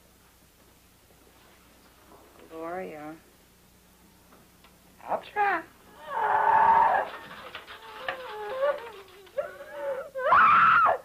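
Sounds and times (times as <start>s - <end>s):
person wailing: 5.9s - 11.0s.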